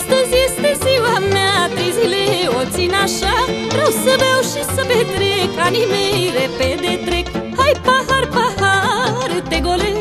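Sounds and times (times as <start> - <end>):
ornamented folk melody: 0.0 - 10.0.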